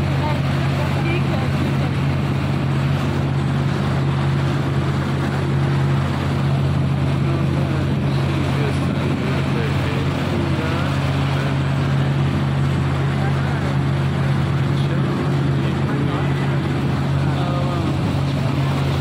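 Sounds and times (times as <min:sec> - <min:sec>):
motorboat engine humming: 0:00.0 - 0:19.0
water rushing and splashing: 0:00.0 - 0:19.0.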